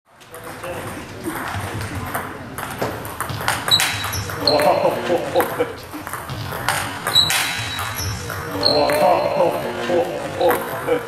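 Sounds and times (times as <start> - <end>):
short high squeak: 3.7 - 4.6, 7.1 - 8.8
table tennis ball clicking: 6.0 - 9.1.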